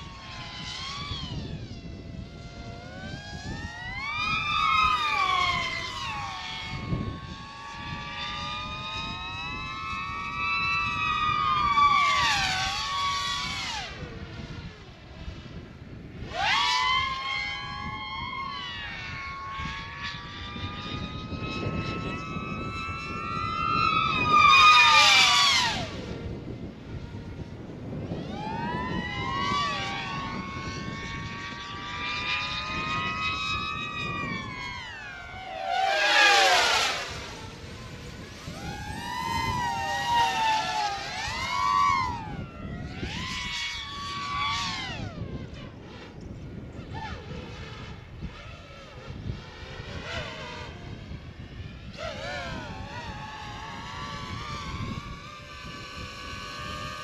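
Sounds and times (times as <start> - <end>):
drone motors whining: 0.0 - 57.0.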